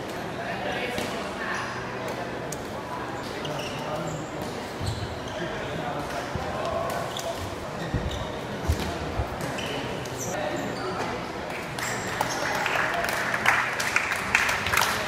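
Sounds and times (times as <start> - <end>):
echoing chatter of people: 0.0 - 15.0.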